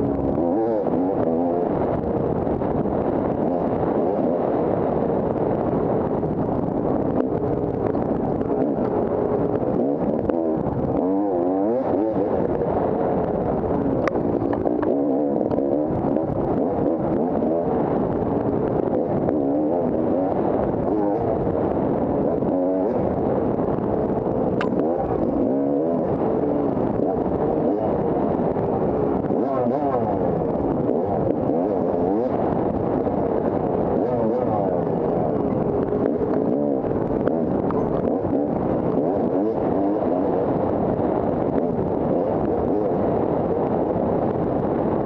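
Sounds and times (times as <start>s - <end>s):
dirt bike engine revving: 7.1s - 44.2s.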